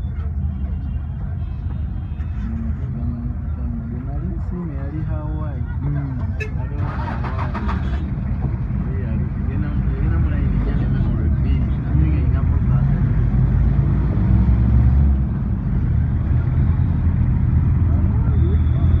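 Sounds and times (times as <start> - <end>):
voices: 0.0 - 13.5, 15.3 - 19.0
car engine and road noise: 0.0 - 19.0.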